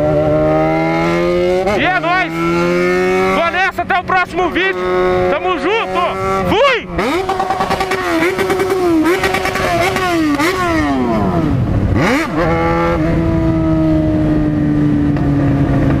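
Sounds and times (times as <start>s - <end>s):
motorcycle engine running: 0.0s - 16.0s.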